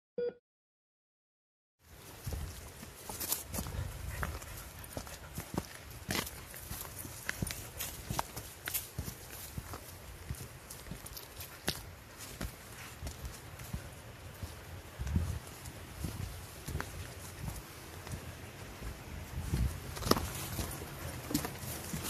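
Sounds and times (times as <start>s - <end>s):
footsteps crunching on frozen stones: 2.0s - 22.0s.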